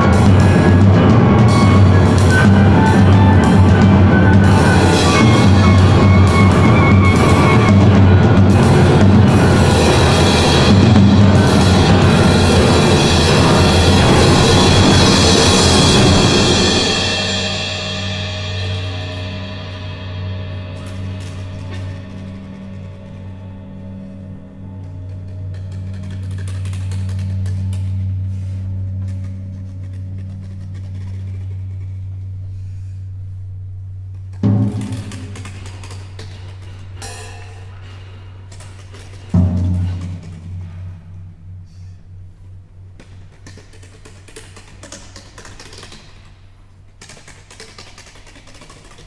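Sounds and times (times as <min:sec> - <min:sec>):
chamber ensemble low drone: 0:00.0 - 0:44.0.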